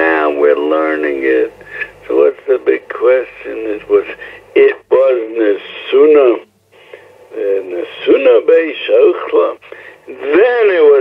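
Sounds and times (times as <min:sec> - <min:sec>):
man lecturing: 0:00.0 - 0:06.4, 0:07.3 - 0:11.0.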